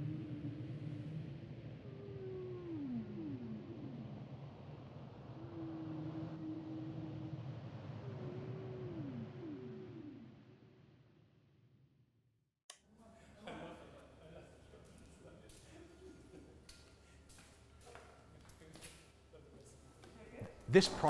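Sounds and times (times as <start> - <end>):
humpback whale song: 0.0 - 10.8.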